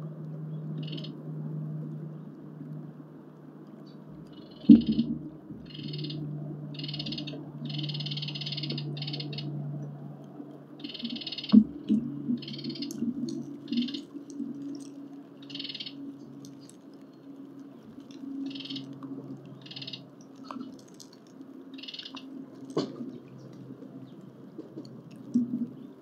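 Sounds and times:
low steady hum: 0.0s - 26.0s
high-pitched animal calls: 0.8s - 1.2s, 4.2s - 9.6s, 10.8s - 16.9s, 17.6s - 23.4s.

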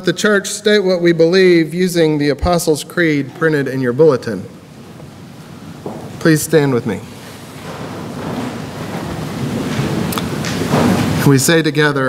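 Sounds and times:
crowd rustling and shuffling: 2.4s - 12.0s.

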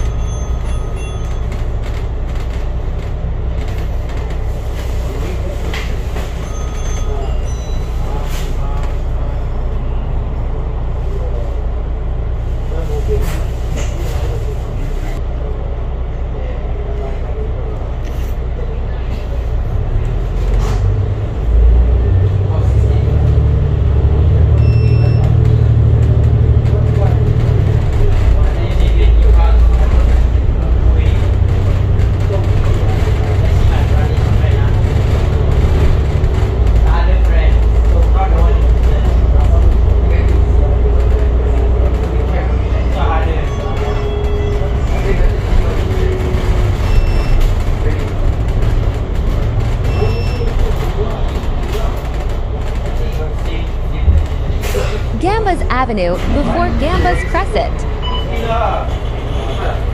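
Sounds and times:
bus engine rumble: 0.0s - 59.9s.

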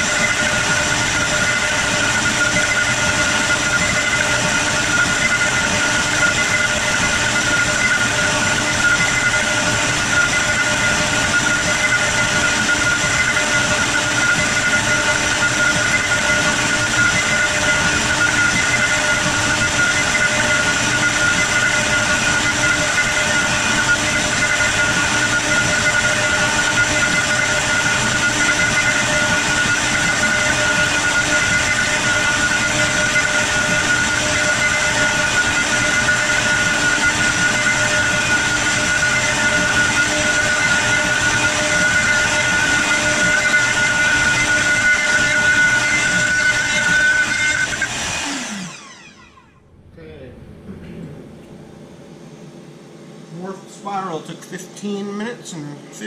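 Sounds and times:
router spindle whining: 0.0s - 49.9s.

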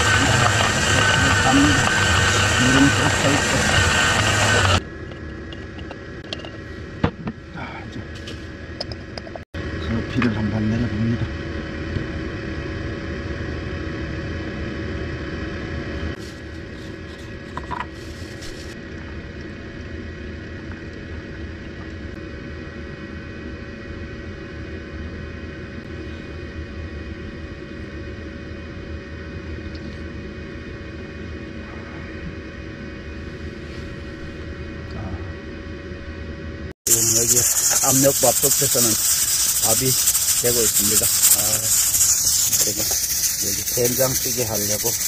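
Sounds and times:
constant hum: 0.0s - 45.0s
low mechanical rumble: 0.0s - 45.0s.

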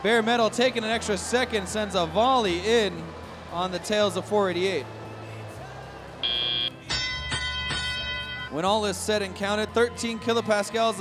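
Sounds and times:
background music: 0.0s - 11.0s
high electronic beep: 6.2s - 6.8s, 7.4s - 8.6s
sustained electronic tone: 6.2s - 6.8s.

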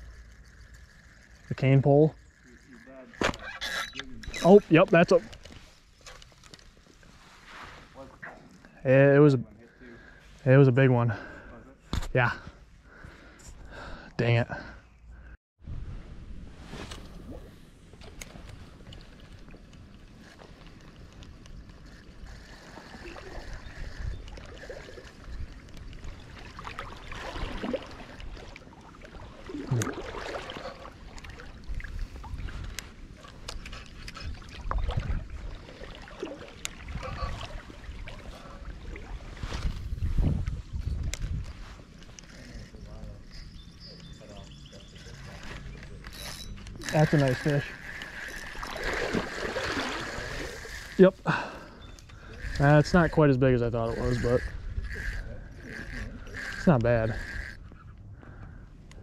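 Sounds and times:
fishing reel cranking: 0.0s - 5.5s, 18.2s - 26.7s, 46.0s - 58.0s
water sloshing and splashing: 17.0s - 40.0s, 46.8s - 51.6s.

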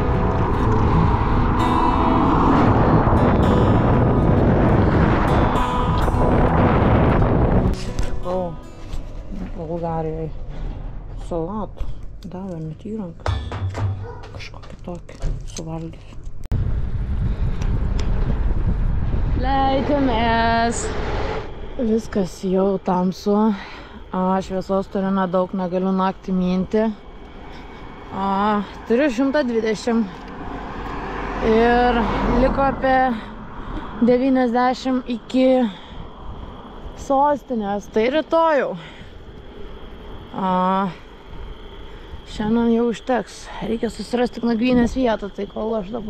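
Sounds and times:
wind buffeting microphone: 0.0s - 14.2s, 16.3s - 46.0s
road noise: 0.0s - 46.0s.

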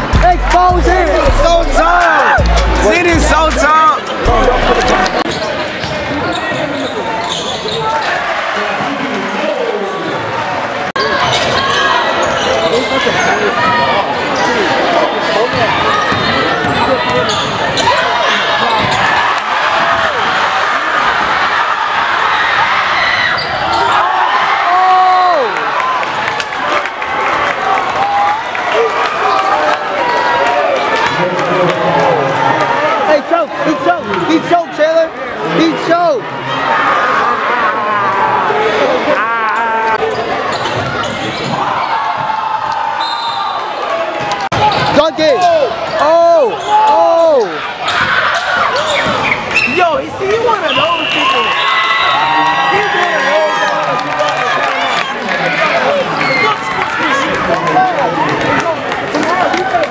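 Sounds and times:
spectators talking and shouting: 0.0s - 59.9s
sneakers squeaking: 3.6s - 8.2s, 11.0s - 14.7s, 15.3s - 19.2s, 23.2s - 24.0s, 40.0s - 42.3s, 44.5s - 45.0s, 46.5s - 47.0s, 47.8s - 51.9s.

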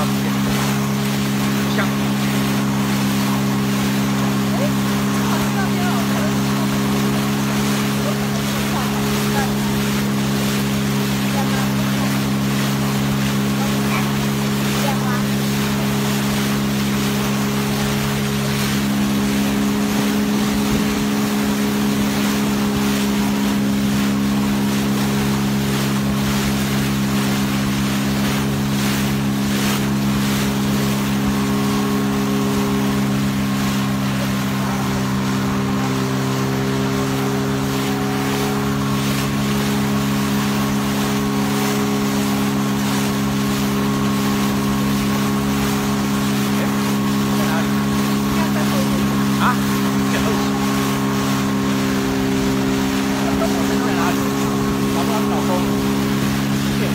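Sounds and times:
outboard motor running: 0.0s - 56.9s
water rushing: 0.0s - 56.9s.

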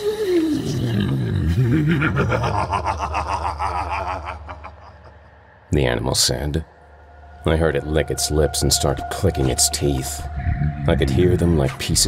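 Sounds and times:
deep distorted monster growl: 0.4s - 12.0s.

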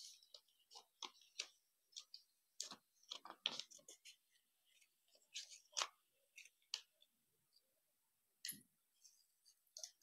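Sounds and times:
paper crinkling: 0.0s - 7.0s.

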